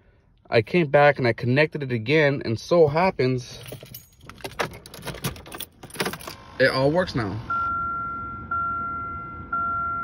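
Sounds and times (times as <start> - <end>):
car door warning chime: 7.5 - 10.0.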